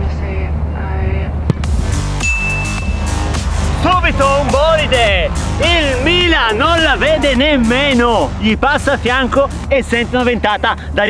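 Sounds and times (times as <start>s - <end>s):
football thud: 1.5s - 1.9s
background music: 1.5s - 11.0s.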